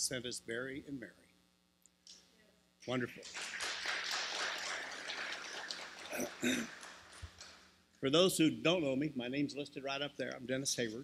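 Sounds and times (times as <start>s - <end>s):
crowd applauding: 3.2s - 7.7s.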